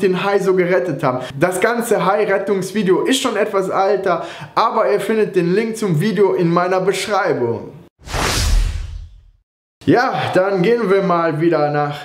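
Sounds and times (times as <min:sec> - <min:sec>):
whoosh: 0:08.0 - 0:09.4.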